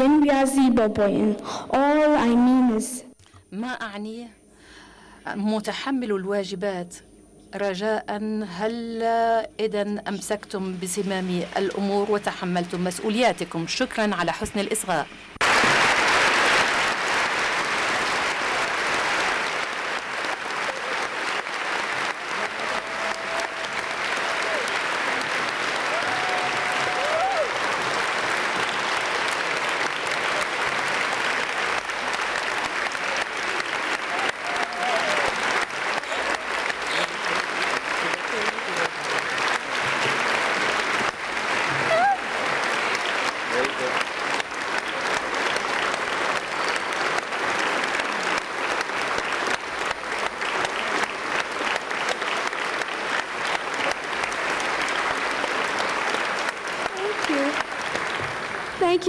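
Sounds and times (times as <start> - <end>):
audience applauding: 15.4 - 59.0.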